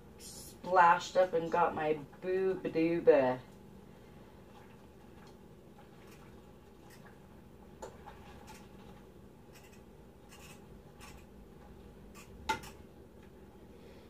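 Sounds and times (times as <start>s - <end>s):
utensil stirring noodles in a pot: 4.4s - 7.3s.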